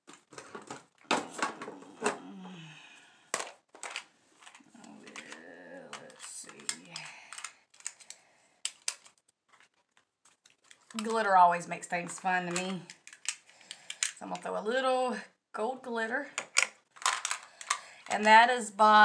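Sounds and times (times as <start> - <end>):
makeup containers clicking and tapping: 3.4 - 8.1, 16.3 - 18.3
person mumbling softly: 4.7 - 7.0.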